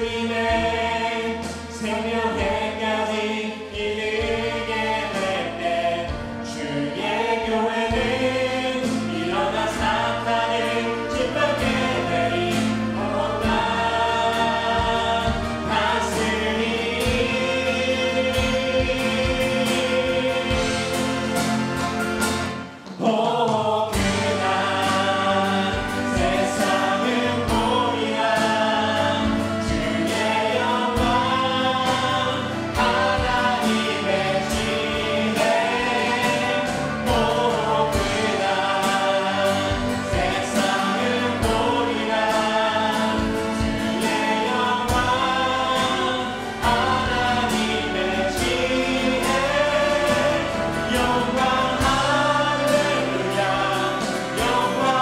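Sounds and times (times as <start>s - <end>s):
acoustic guitar: 0.0s - 55.0s
men and women singing praise song: 0.0s - 55.0s
steady beat: 11.1s - 55.0s.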